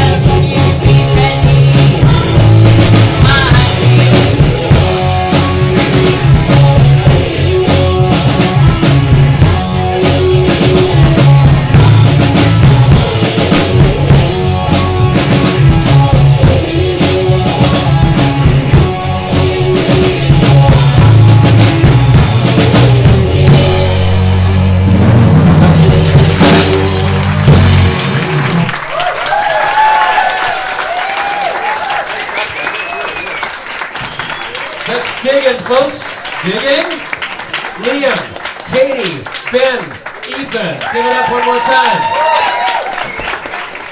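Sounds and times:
electric guitars: 0:00.0 - 0:29.9
bass guitar: 0:00.0 - 0:31.4
drum kit: 0:00.0 - 0:39.2, 0:40.8 - 0:43.9.

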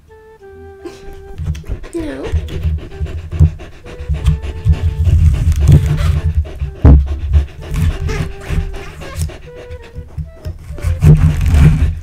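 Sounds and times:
soft background music: 0:00.0 - 0:12.0
dog panting: 0:00.9 - 0:12.0.

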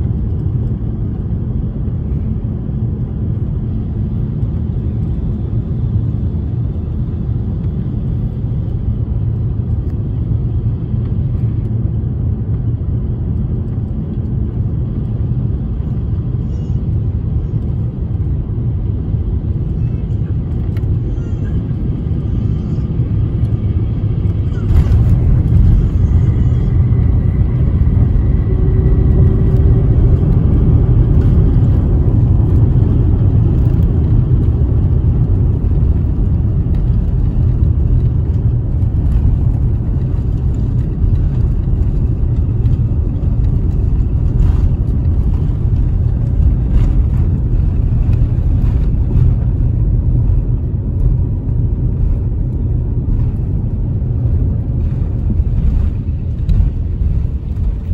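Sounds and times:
airliner cabin rumble: 0:00.0 - 0:57.9.

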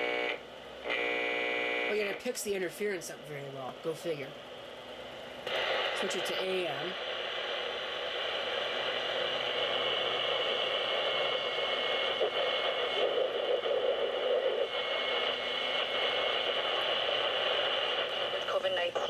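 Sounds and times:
radio static hiss: 0:00.0 - 0:04.5, 0:05.4 - 0:19.0.

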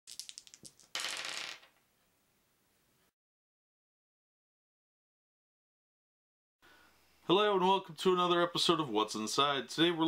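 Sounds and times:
plastic dice clattering on table: 0:00.1 - 0:01.8.

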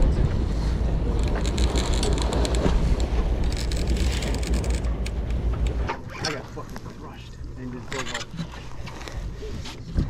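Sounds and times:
wind buffeting microphone: 0:00.0 - 0:06.8
low boat rumble: 0:00.0 - 0:10.0.

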